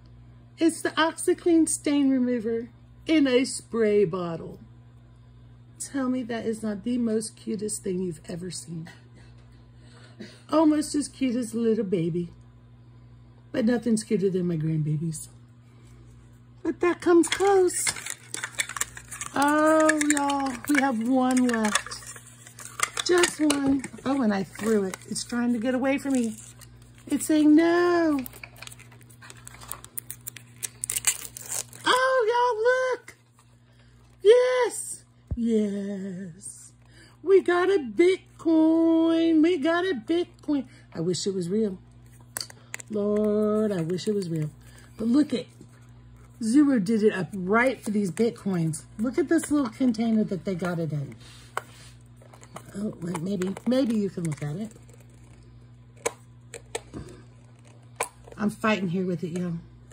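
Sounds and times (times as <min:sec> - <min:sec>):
faint low hum: 0:00.0 - 0:59.9
plastic wrapper tearing and crinkling: 0:17.3 - 0:32.2, 0:52.0 - 0:58.4.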